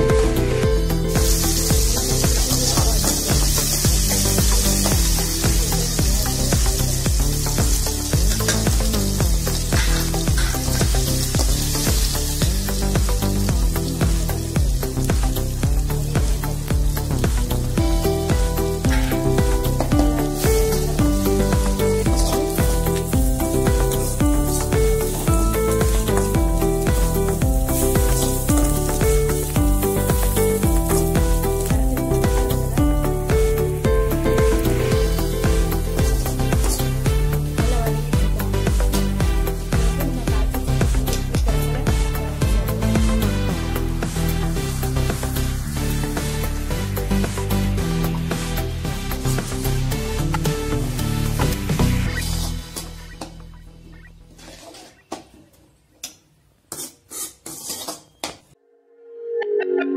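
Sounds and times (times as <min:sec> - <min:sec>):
food sizzling in hot oil: 0:00.0 - 0:53.2
background music: 0:00.0 - 0:54.5, 0:58.5 - 0:59.9
metal spatula scraping pan: 0:52.2 - 0:53.1, 0:54.3 - 0:55.1, 0:56.7 - 0:58.2.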